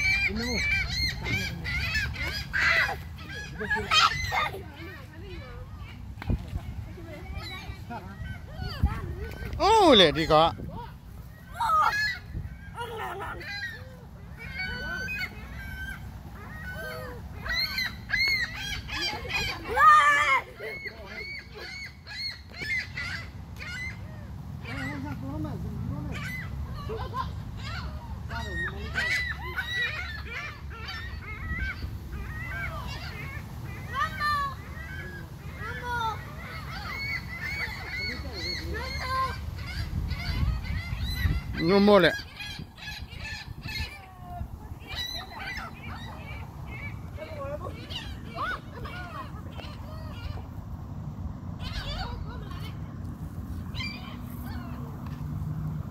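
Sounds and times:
gulls calling: 0.0s - 55.9s.

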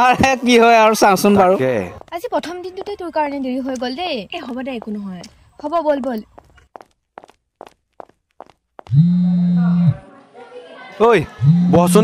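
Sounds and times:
footsteps on hard floor: 5.7s - 8.9s
low phone buzz: 8.9s - 10.0s, 11.4s - 12.0s.

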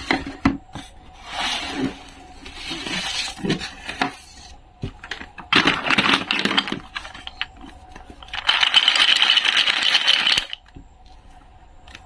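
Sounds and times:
wooden toys clattering in basket: 8.2s - 10.6s.

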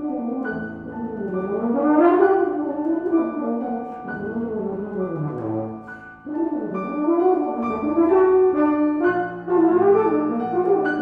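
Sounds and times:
euphonium melody: 0.0s - 11.0s
piano accompaniment: 0.0s - 11.0s.

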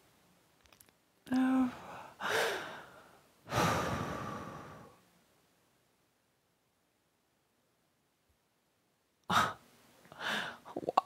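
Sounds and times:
woman humming: 1.3s - 1.9s
breathy exhales: 1.8s - 5.0s.

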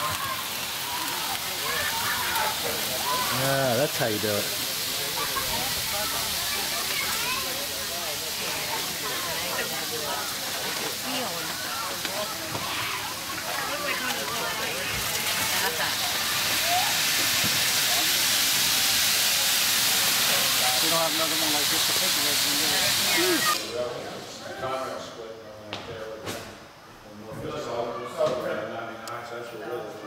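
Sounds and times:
grill hissing: 0.0s - 25.0s
faint chatter of people: 0.0s - 30.0s.

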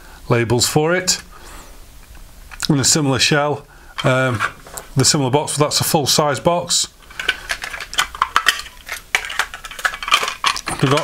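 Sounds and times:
plastic cassette cases clattering: 7.1s - 11.0s.

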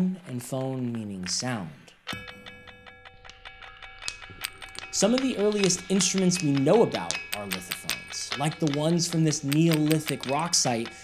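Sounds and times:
struck stones ringing: 2.0s - 11.0s.

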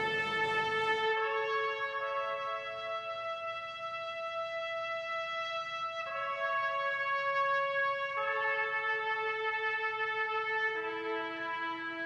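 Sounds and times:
slow brass music: 0.0s - 3.6s, 6.1s - 12.0s.

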